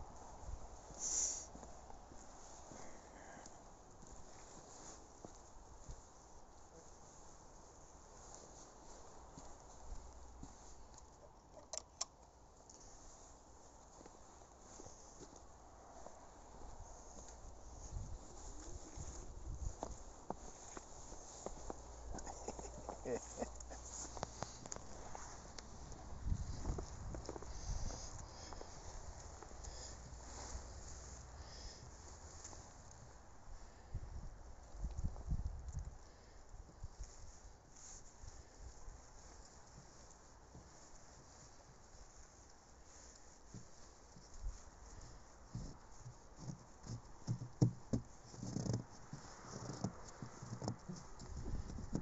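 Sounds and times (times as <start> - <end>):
footsteps crunching on snow: 0.0 - 11.0, 12.7 - 33.8, 36.1 - 52.0.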